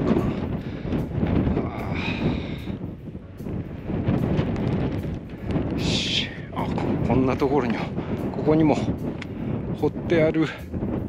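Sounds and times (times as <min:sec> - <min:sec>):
strong wind gusting on microphone: 0:00.0 - 0:11.0.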